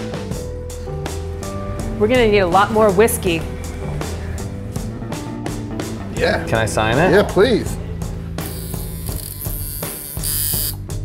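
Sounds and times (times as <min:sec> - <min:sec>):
tattoo machine buzzing: 0:08.4 - 0:10.9.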